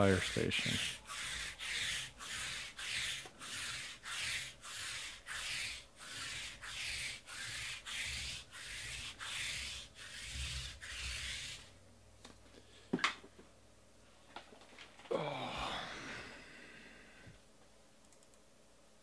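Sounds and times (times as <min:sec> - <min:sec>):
lint roller rolling on mat: 0:00.0 - 0:11.8.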